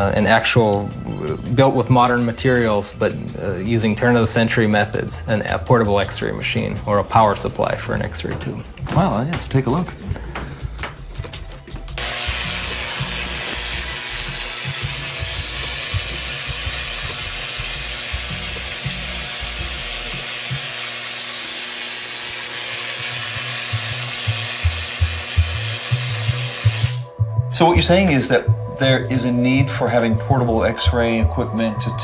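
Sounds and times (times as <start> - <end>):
hiss of electric sparks: 12.0 - 27.1.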